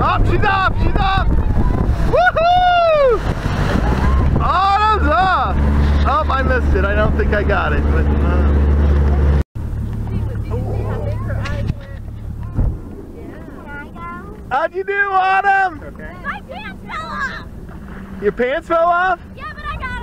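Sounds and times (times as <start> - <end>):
motorboat engine humming: 0.0 - 20.0
people shouting: 1.6 - 3.3, 16.3 - 17.5.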